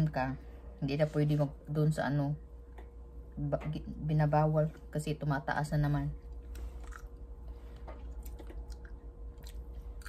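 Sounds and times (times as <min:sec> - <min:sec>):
person chewing: 0:06.4 - 0:10.0.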